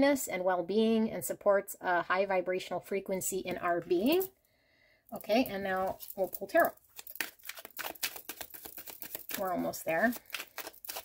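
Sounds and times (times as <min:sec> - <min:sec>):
cards being shuffled: 0:05.8 - 0:11.0.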